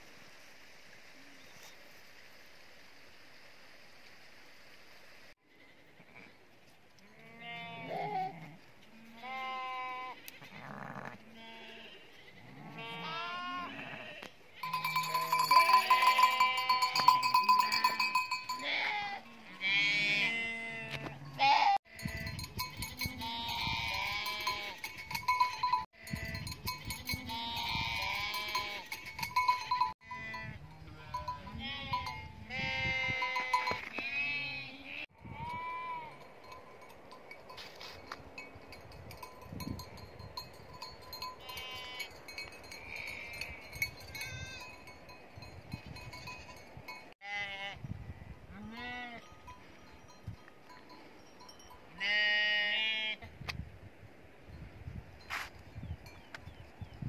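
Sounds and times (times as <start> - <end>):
sheep and goats bleating: 7.0 - 36.3, 41.2 - 44.9, 47.2 - 47.8, 48.5 - 49.3, 51.9 - 53.3
livestock bells ringing: 14.6 - 19.7, 21.2 - 33.9, 36.0 - 47.2, 49.2 - 52.2.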